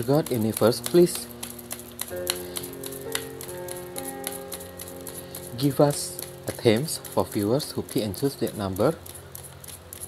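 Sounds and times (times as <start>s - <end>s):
soft sustained music chords: 0.0s - 9.0s
cards being shuffled: 0.0s - 10.0s.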